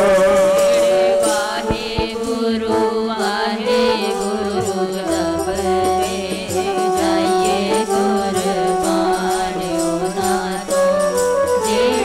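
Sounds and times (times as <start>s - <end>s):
harmonium chords: 0.0s - 12.0s
voices singing a hymn: 0.0s - 12.0s
sharp hand drum strokes: 0.6s - 2.6s.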